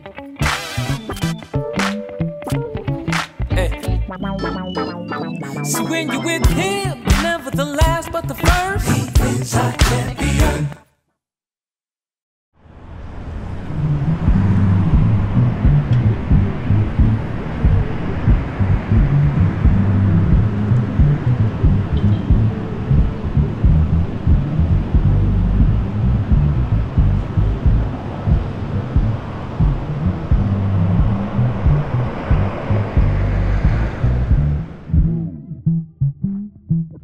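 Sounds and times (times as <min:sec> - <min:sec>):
music with heavy bass and drums: 0:00.0 - 0:10.8, 0:14.3 - 0:37.0.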